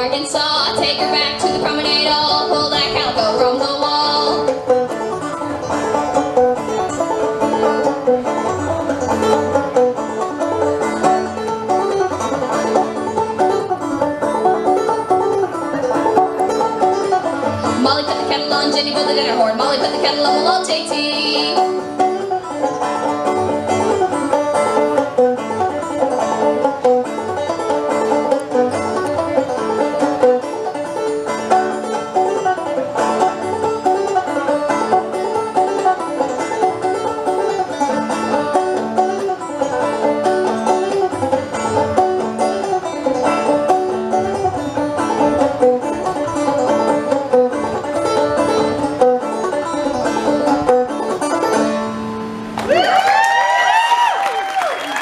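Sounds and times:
clawhammer banjo tune: 0.0s - 52.6s.

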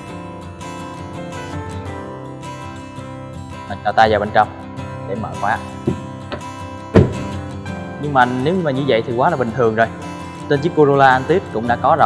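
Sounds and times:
acoustic guitar music: 0.0s - 12.0s
car door locks clunking: 5.8s - 7.4s.

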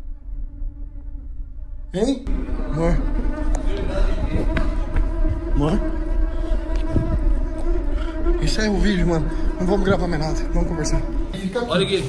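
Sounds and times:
faint low rumble: 0.0s - 5.2s
low steady hum: 0.0s - 8.1s.

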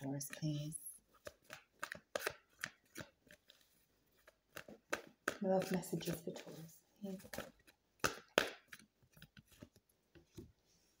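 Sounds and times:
cards clicking: 1.2s - 3.4s.

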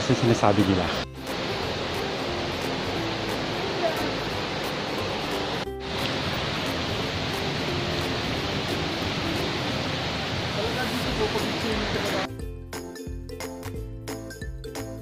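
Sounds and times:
stream water flowing: 0.0s - 12.3s.

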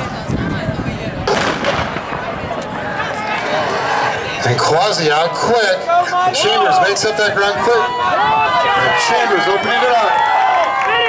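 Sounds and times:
spectators' voices: 0.0s - 11.0s
starter's pistol firing: 1.3s - 2.6s.

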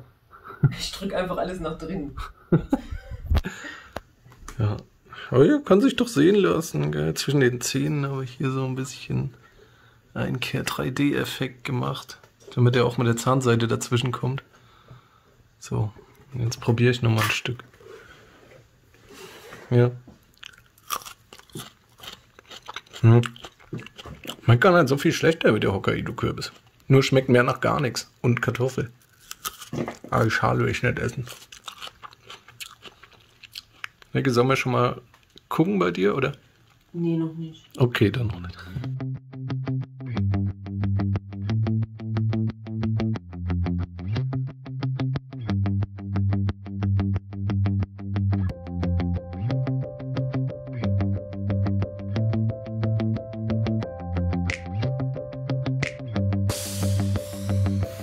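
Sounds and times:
person chewing crunchily: 20.2s - 24.6s, 29.0s - 30.0s, 31.1s - 34.2s
background music with quick beat: 52.2s - 58.0s.

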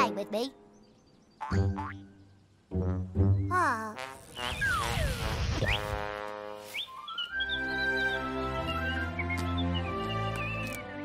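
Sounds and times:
light cartoon music: 0.0s - 0.7s, 1.4s - 11.0s
bird-like chirps: 0.5s - 2.6s, 4.2s - 5.9s, 6.6s - 10.8s.

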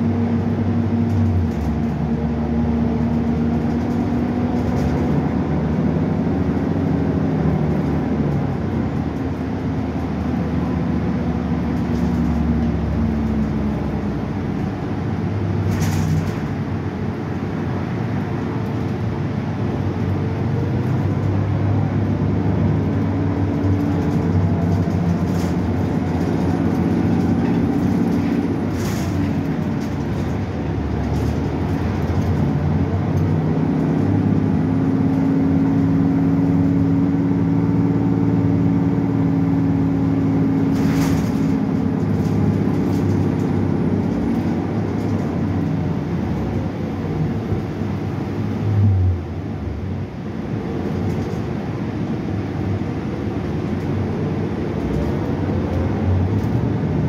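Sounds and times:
bus engine drone: 0.0s - 57.0s
road noise: 0.0s - 57.0s
sharp rattles: 23.6s - 32.5s.

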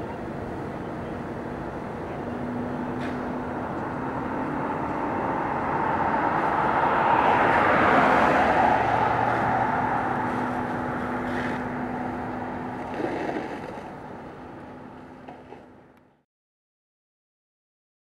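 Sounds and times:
road vehicle passing by: 0.0s - 16.0s.

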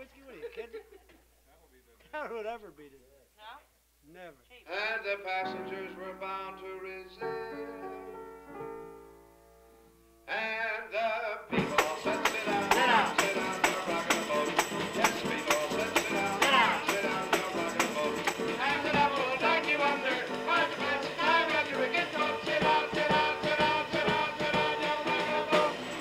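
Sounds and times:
piano: 4.9s - 26.0s
drums: 11.5s - 26.0s.

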